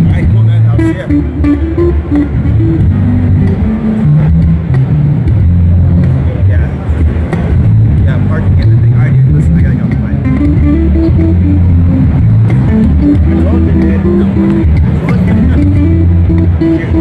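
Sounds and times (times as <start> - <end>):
crowd chatter: 0.0 - 17.0
electric basses jamming: 0.0 - 17.0.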